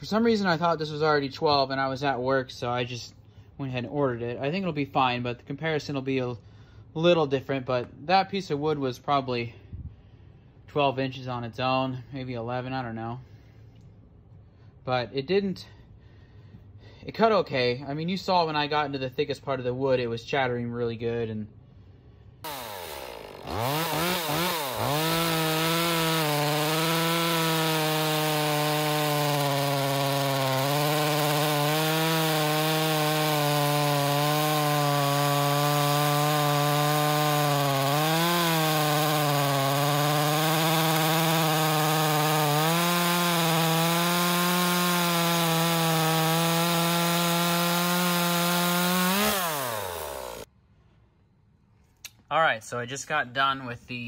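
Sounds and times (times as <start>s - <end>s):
chainsaw cutting through log: 22.4s - 50.5s.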